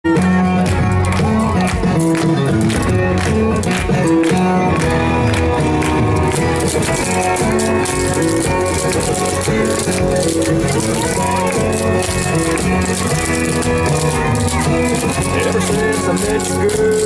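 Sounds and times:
upbeat dance music: 0:00.1 - 0:17.0.

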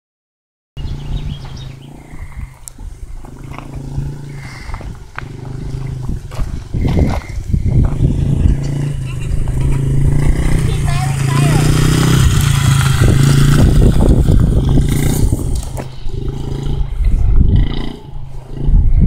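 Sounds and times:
dirt bike engine running: 0:00.8 - 0:19.0.

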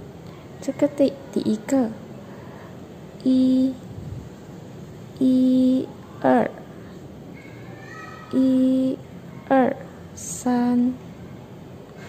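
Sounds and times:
woman speaking a syllable: 0:03.2 - 0:03.8, 0:05.2 - 0:06.6, 0:08.4 - 0:11.0.

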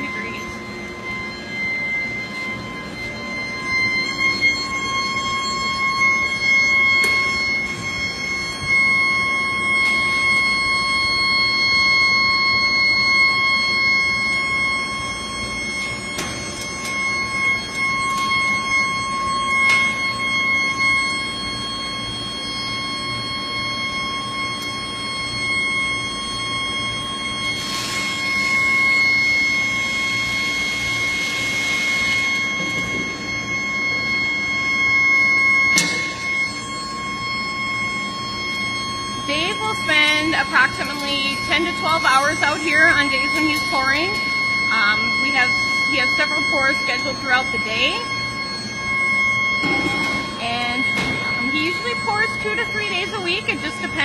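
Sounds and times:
higher tone: 0:00.0 - 0:54.0
induction furnace high-pitched whine: 0:00.0 - 0:54.0
machinery din: 0:49.6 - 0:54.0.

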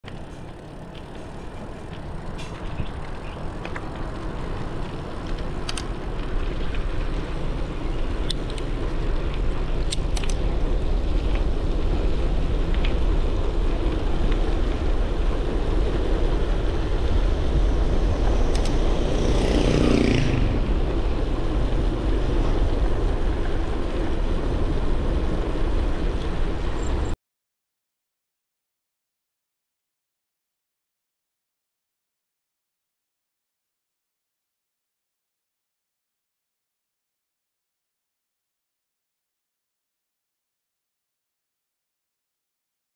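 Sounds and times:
bike clicks and rattles: 0:00.0 - 0:17.4, 0:18.2 - 0:19.4
tyre noise on asphalt: 0:00.0 - 0:27.2
wind rushing over microphone: 0:00.4 - 0:27.2.

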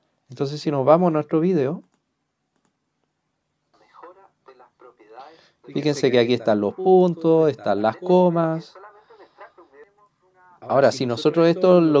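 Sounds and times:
computer mouse clicks: 0:01.8 - 0:02.8.

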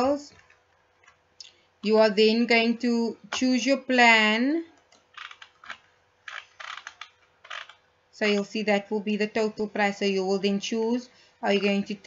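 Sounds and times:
computer mouse clicking: 0:04.8 - 0:07.8.

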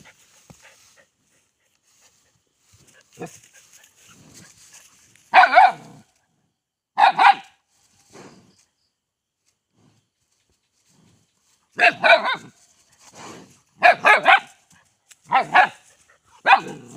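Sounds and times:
puppy barking: 0:05.3 - 0:06.0, 0:07.0 - 0:07.5, 0:11.8 - 0:12.6, 0:13.8 - 0:14.6, 0:15.3 - 0:15.8, 0:16.4 - 0:16.9.

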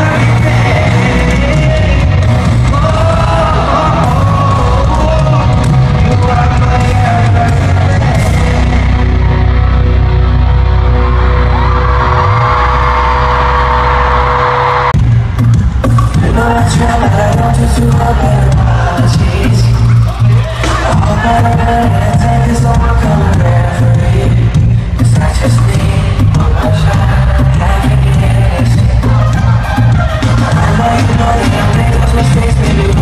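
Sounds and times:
live pop concert music: 0:00.0 - 0:33.0
crowd screaming: 0:08.2 - 0:15.3, 0:18.5 - 0:22.1, 0:28.0 - 0:33.0.

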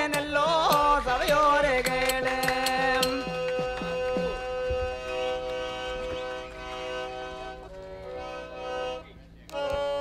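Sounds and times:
hand drum strokes: 0:00.0 - 0:04.9
harmonium holding a chord: 0:00.0 - 0:10.0.

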